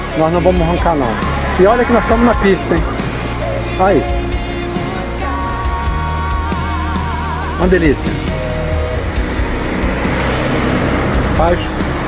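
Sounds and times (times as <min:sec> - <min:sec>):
vehicle passing: 0:00.0 - 0:06.0, 0:08.1 - 0:12.0
road traffic noise: 0:00.0 - 0:12.0.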